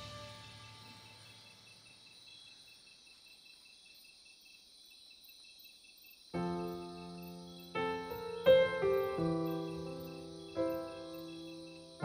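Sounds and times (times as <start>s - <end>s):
background music: 0.0s - 1.6s, 6.4s - 12.0s
crickets chirping: 0.0s - 12.0s.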